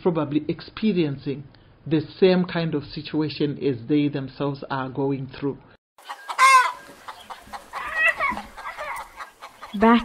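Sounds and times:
chickens calling: 6.0 - 10.0.

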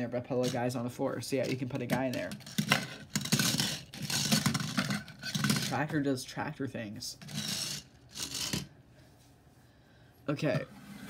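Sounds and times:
plastic toy scraping on wood: 2.2 - 5.8, 7.2 - 8.7.

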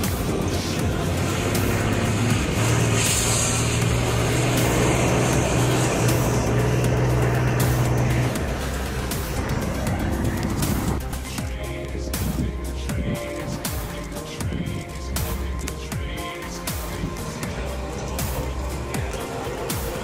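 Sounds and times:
background music: 0.0 - 20.0
truck diesel engine running: 0.0 - 20.0.

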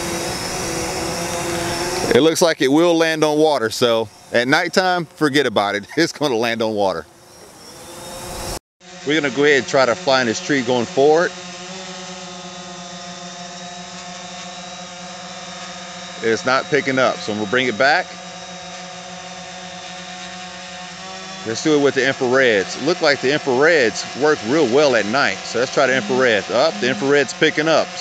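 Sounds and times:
drone propellers whirring: 0.0 - 28.0.

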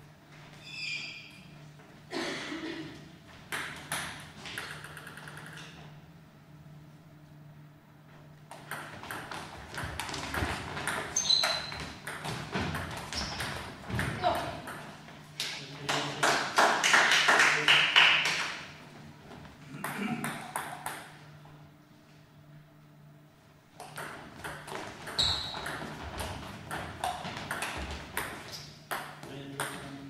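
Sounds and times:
table tennis ball clicking: 3.6 - 5.8.

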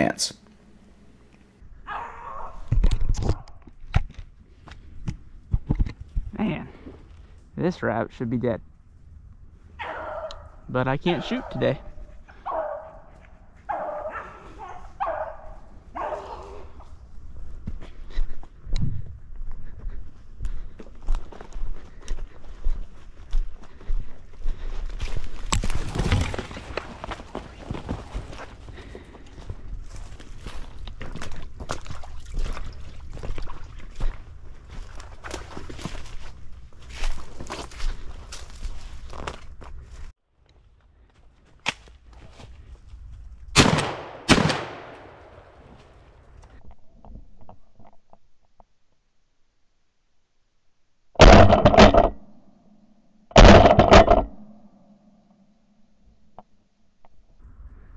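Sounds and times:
dogs baying: 13.7 - 16.6
footsteps crunching through dry leaves: 29.8 - 40.1.

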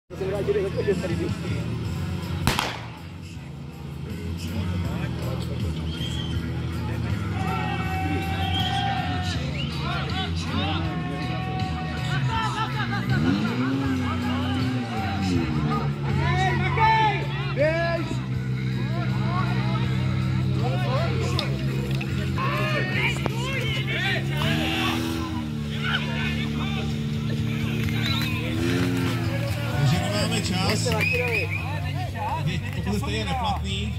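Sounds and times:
people shouting and cheering: 4.5 - 33.9.

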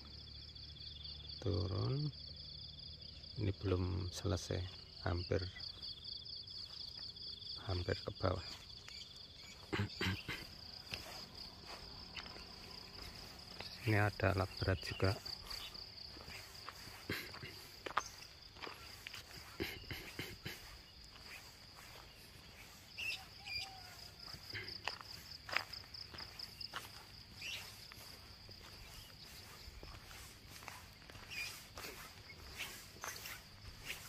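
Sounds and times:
insects chirring: 0.0 - 34.0
footsteps on roadside: 4.7 - 34.0.

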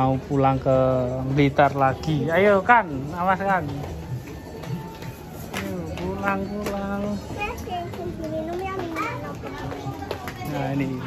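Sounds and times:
children chattering: 7.3 - 11.0.

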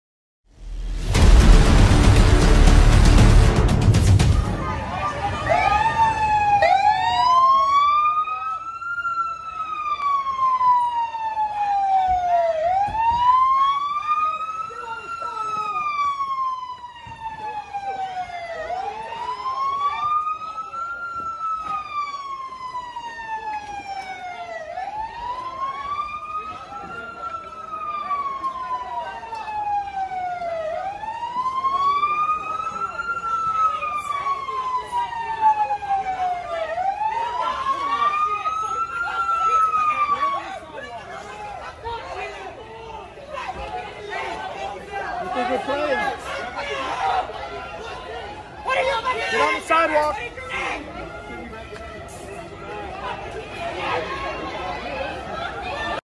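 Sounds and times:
police siren wailing: 0.6 - 56.0.

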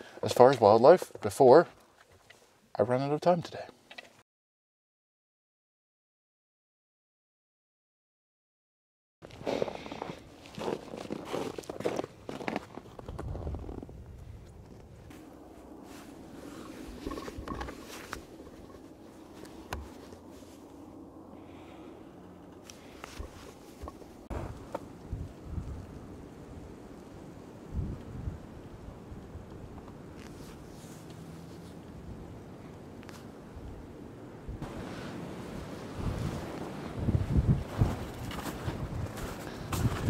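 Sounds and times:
wind rumbling on microphone: 9.2 - 40.0.

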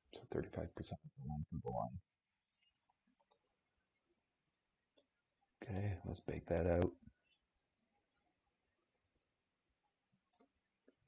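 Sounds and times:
faint computer mouse clicks: 2.6 - 3.5, 10.3 - 10.6.

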